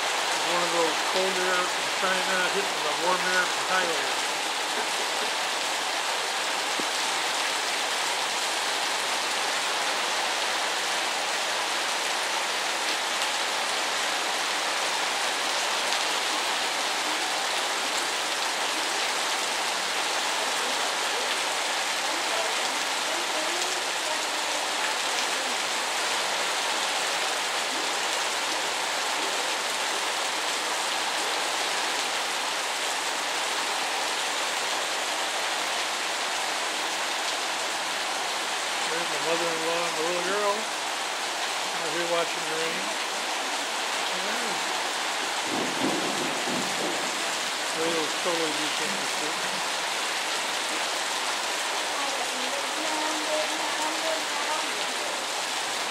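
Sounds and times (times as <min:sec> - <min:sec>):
heavy rain on a roof: 0:00.0 - 0:55.9.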